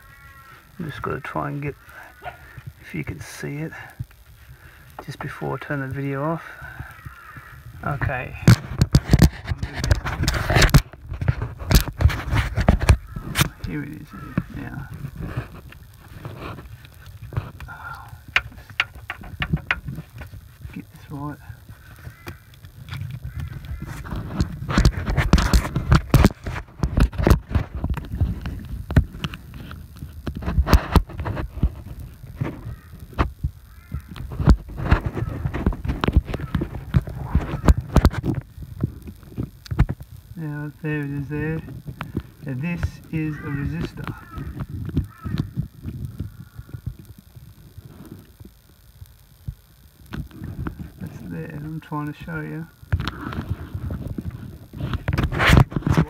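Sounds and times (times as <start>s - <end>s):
steady low rumble: 0.0s - 55.8s
handling clicks and knocks: 18.3s - 20.0s.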